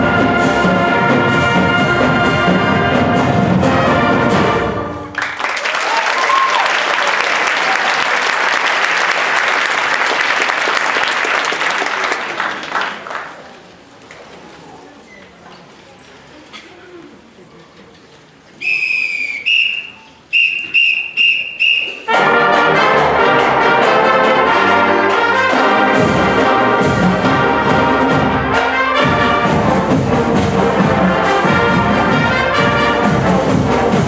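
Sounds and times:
brass pep band playing: 0.0 - 5.4, 19.3 - 34.0
whistle blasts: 18.6 - 22.1.

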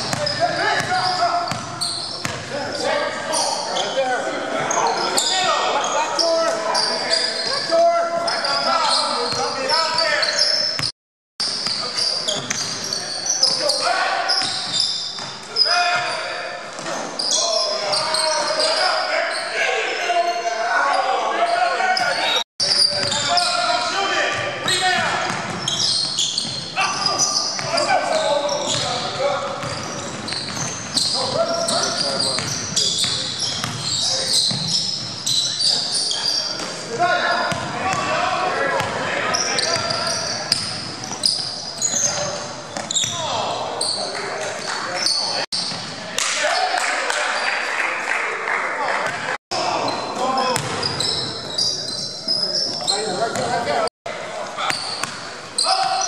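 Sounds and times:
players calling out: 0.0 - 10.9, 11.5 - 47.7.

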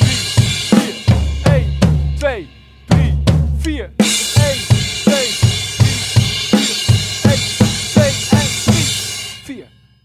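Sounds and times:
drum kit driving beat: 0.0 - 9.7
crash cymbals ringing: 4.1 - 10.0.

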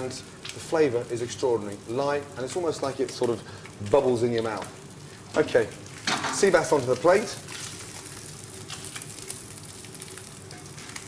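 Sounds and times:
hot pan sizzling: 0.0 - 11.0.

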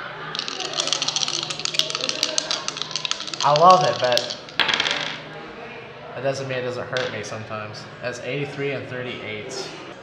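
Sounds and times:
dice rattling in hands: 0.3 - 5.2.

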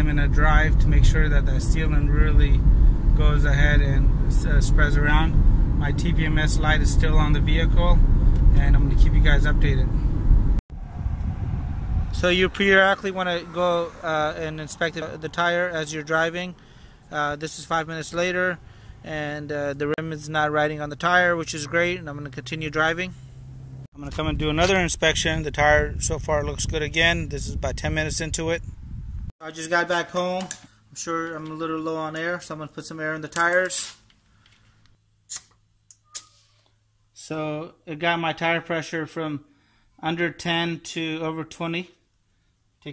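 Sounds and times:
faint low rumble: 0.0 - 16.5
car road noise rumble: 0.0 - 29.3.

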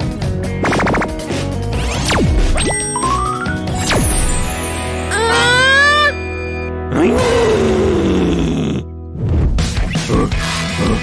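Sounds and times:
background music: 0.0 - 11.0
cartoon character groaning: 6.9 - 8.9, 10.2 - 11.0.

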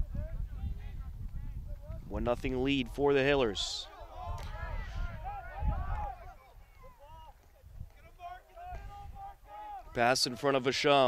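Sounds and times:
distant voices shouting: 3.1 - 10.5.

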